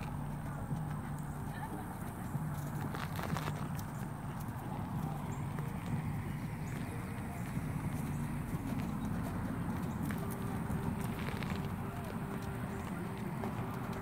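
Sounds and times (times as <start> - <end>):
horse hooves cantering on dirt: 0.0 - 14.0
steady low rumble: 0.0 - 14.0.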